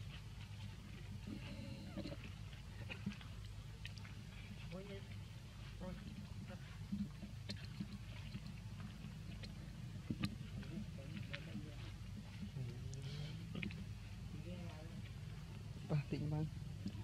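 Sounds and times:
light clicks and crackles: 0.0 - 14.1, 16.7 - 17.0.

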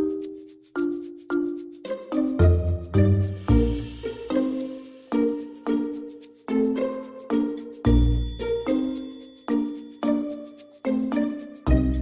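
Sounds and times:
quick high ticking rhythm: 0.0 - 12.0.

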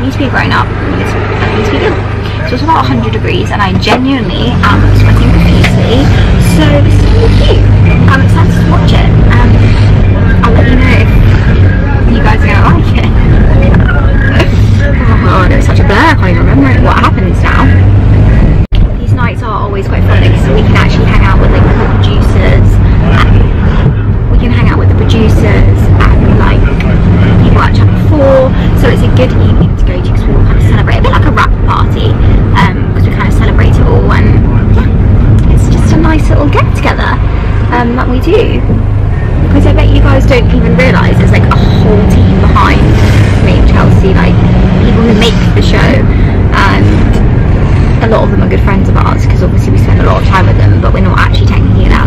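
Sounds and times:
woman talking: 0.0 - 11.4, 12.0 - 17.9, 18.8 - 23.6, 24.3 - 38.8, 39.4 - 47.2, 48.0 - 52.0
car cabin road rumble: 0.0 - 52.0.

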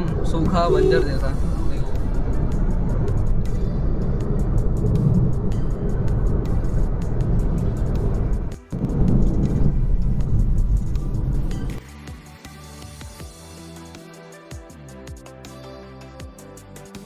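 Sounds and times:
car driving on a highway: 0.0 - 11.8
background music: 0.0 - 17.0.

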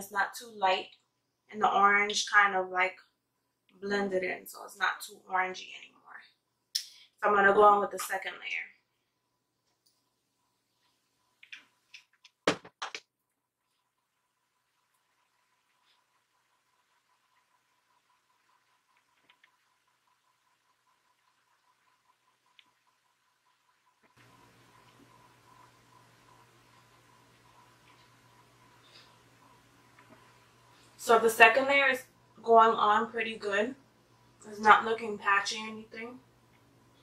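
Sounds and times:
steady low hum: 13.7 - 37.0.

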